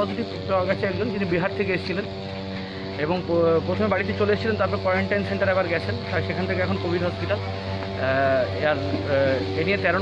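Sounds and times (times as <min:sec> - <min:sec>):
man speaking: 0:00.0 - 0:02.2, 0:02.9 - 0:10.0
steady low hum: 0:00.0 - 0:10.0.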